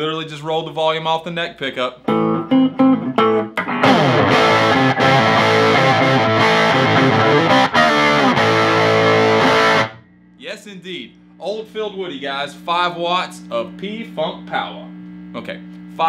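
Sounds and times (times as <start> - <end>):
overdriven electric guitar: 2.1 - 10.1.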